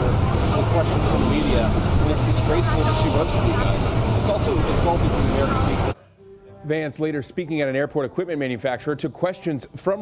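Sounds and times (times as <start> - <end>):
man speaking: 0.6 - 6.0.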